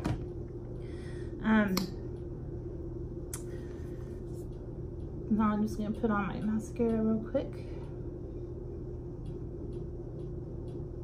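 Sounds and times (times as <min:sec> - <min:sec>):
low background hum: 0:00.0 - 0:11.0.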